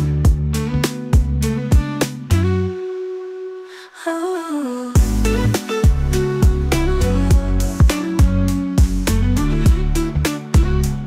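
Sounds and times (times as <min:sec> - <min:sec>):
hip-hop beat: 0:00.0 - 0:02.9, 0:05.0 - 0:11.0.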